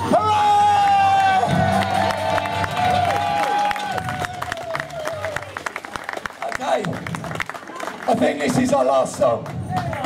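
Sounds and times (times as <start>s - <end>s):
shorter whoops: 0.1s - 5.4s
crowd cheering: 0.1s - 9.0s
scattered handclaps: 1.7s - 10.0s.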